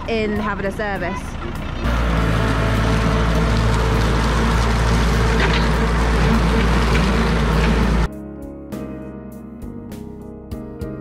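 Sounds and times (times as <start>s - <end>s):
tractor engine running: 0.0s - 8.1s.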